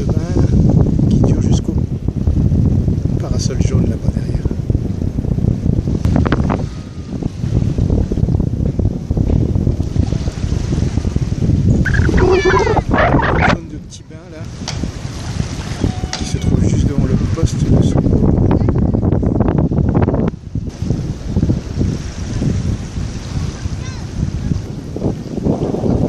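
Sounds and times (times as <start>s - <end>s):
voices on a busy beach: 0.0s - 26.0s
wind buffeting microphone: 0.0s - 26.0s
high wavering voice calling: 11.9s - 13.6s.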